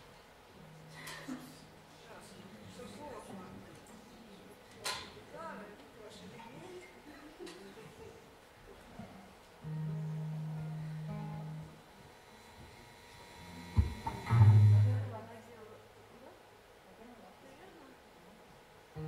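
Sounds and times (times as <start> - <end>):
acoustic guitar strings plucked: 13.6 - 15.0.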